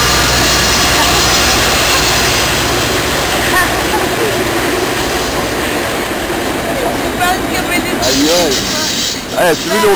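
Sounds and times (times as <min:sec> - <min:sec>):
train wheels on rails: 0:00.0 - 0:09.9.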